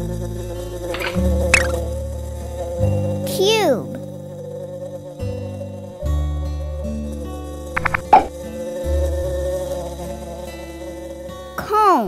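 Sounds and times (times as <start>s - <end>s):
cartoon bee buzzing: 1.0s - 1.8s, 7.8s - 8.3s
children's music with bass: 1.0s - 2.2s, 3.2s - 4.0s.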